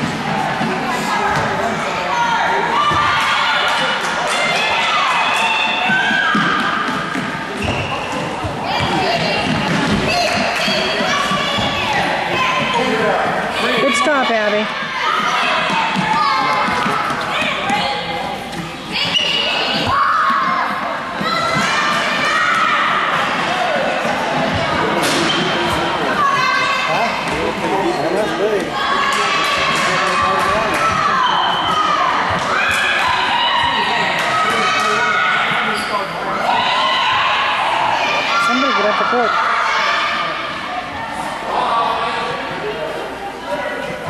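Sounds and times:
children and spectators calling out: 28.7 - 42.3.

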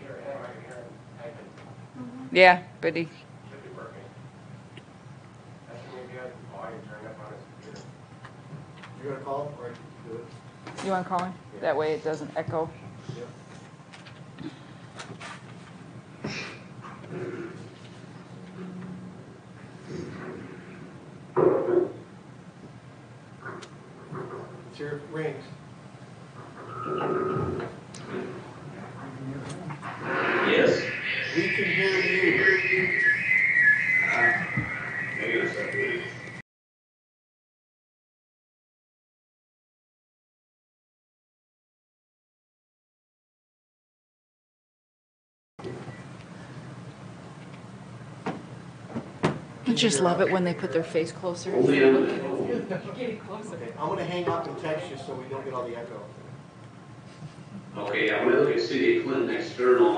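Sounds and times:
quiet talk in large room: 0.0 - 36.4, 45.6 - 59.9
high whistle of audio feedback: 30.2 - 36.4.

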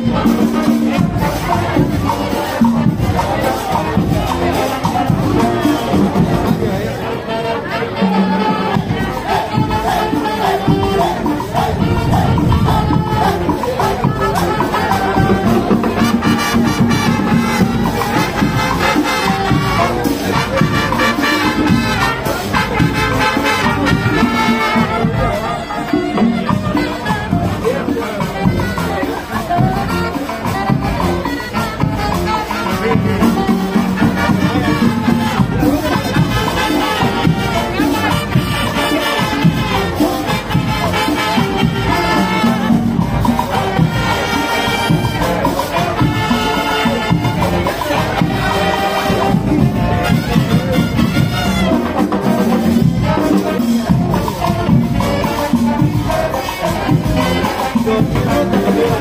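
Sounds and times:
marching band playing: 0.0 - 59.0.

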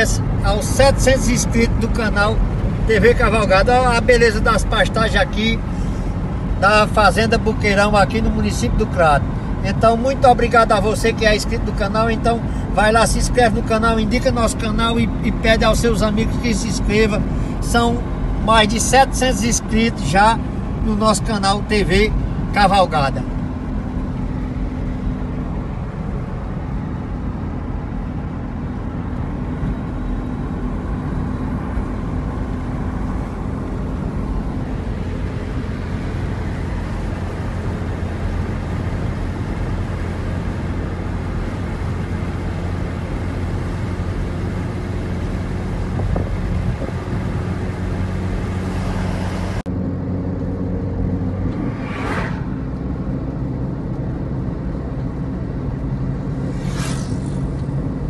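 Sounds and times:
car road and engine noise: 0.0 - 58.0
rushing whoosh: 51.2 - 53.3, 55.9 - 58.0.

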